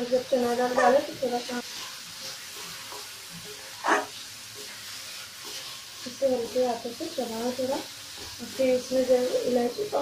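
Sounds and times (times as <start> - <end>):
low sizzle of cooking food: 0.0 - 10.0
spoon stirring in a pan: 0.1 - 10.0
spoon scraping pan: 0.4 - 10.0.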